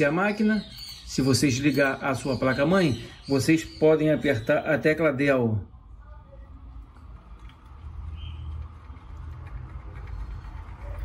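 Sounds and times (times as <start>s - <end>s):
computer fans rumbling: 5.7s - 11.0s.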